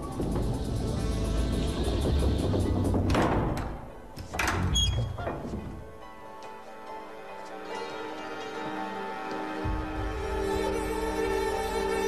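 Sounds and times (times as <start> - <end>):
low drone music: 0.0 - 3.7, 5.9 - 12.0.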